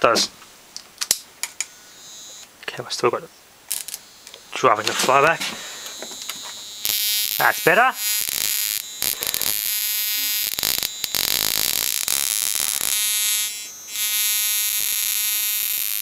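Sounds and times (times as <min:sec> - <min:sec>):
electrical spark buzz: 0:03.7 - 0:16.0.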